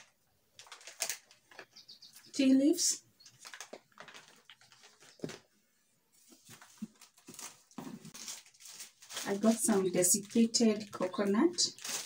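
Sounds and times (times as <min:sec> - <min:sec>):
tea packet rustling: 0:00.0 - 0:01.8, 0:03.2 - 0:05.6, 0:06.3 - 0:12.0.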